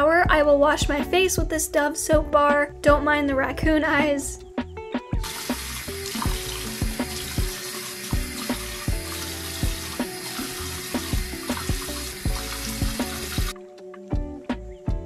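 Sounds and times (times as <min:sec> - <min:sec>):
faucet running into sink: 0:05.2 - 0:13.6
tap shut off: 0:08.2 - 0:13.5.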